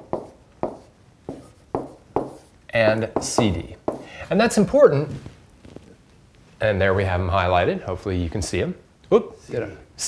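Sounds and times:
pen tapping and scraping screen: 0.0s - 2.6s.

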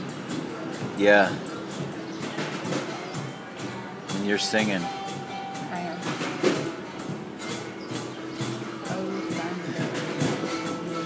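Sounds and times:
live music in background: 0.0s - 11.0s.

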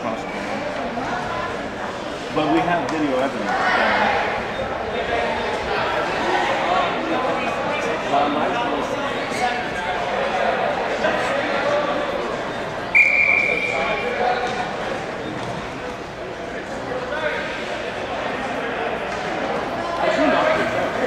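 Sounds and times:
murmur of spectator voices: 0.0s - 21.0s
referee's whistle blast: 12.9s - 14.2s.

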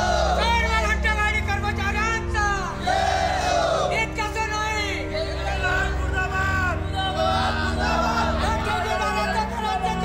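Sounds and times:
crowd chanting in unison: 0.0s - 0.4s, 2.8s - 4.0s, 6.9s - 10.0s.

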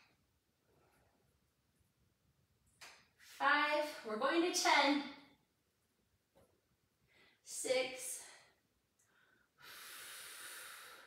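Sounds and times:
woman breathing out: 9.0s - 11.0s.

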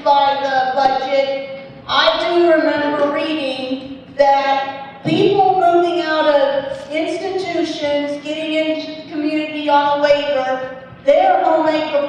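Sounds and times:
woman speaking into microphone: 0.0s - 12.0s.

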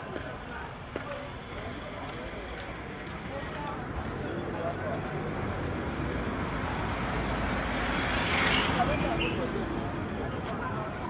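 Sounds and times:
people talking: 0.0s - 6.3s, 8.4s - 11.0s
road traffic hum: 0.0s - 11.0s.

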